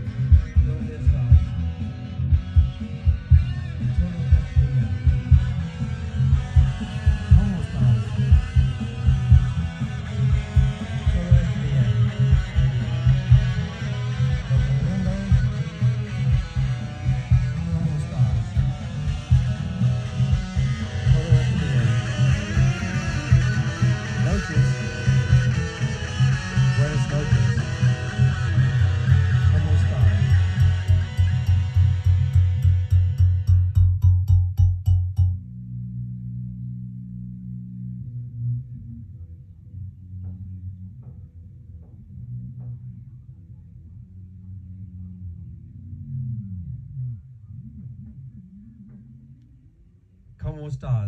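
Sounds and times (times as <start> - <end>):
guitar-driven music: 0.0 - 39.4.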